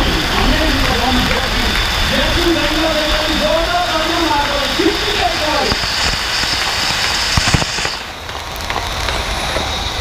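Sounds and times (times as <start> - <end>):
low venue rumble: 0.0 - 6.0
sharp crackles: 0.0 - 10.0
spark fountain hissing: 0.0 - 10.0.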